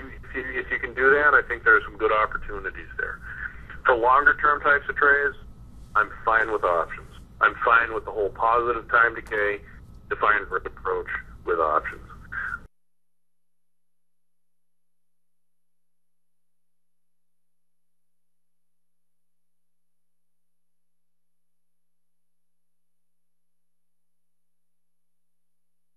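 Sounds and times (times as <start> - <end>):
faint electronic hum: 0.0 - 12.7.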